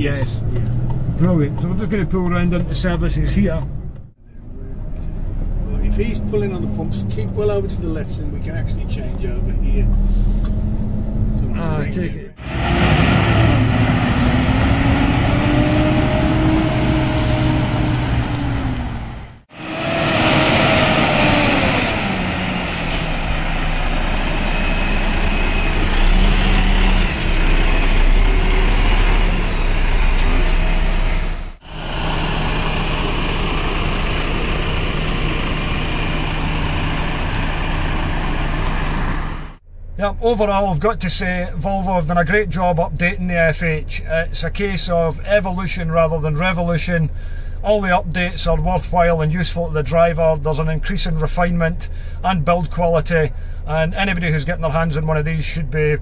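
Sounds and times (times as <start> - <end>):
diesel truck engine idling: 13.7 - 41.5, 51.7 - 55.9.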